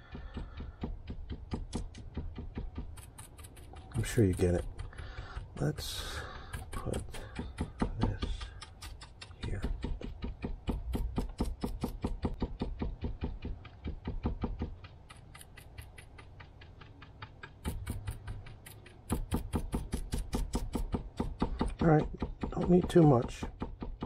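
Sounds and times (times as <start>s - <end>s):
paint brush dabbing on wood: 0.0s - 24.0s.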